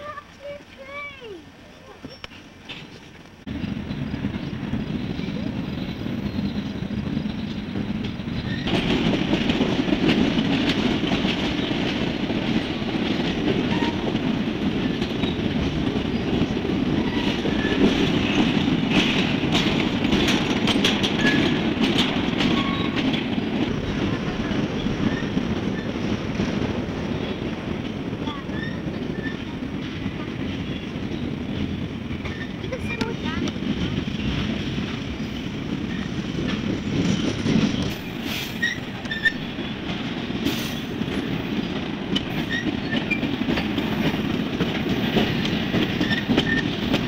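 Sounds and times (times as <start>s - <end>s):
train cars rumbling on rails: 0.0s - 47.0s
wheel squeaks: 1.8s - 3.1s, 20.6s - 21.6s, 22.4s - 23.2s, 28.4s - 29.6s, 36.8s - 39.6s, 45.9s - 46.9s
wheel clicks over rail joints: 6.5s - 26.5s, 42.1s - 47.0s.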